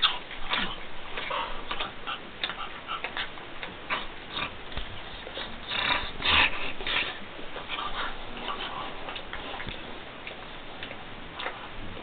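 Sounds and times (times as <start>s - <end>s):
dogs mouthing and breathing: 0.0s - 12.0s.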